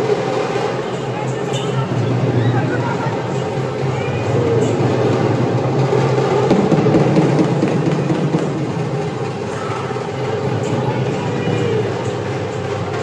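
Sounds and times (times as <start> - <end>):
crowd din: 0.0 - 13.0
rapid drumming: 0.0 - 13.0.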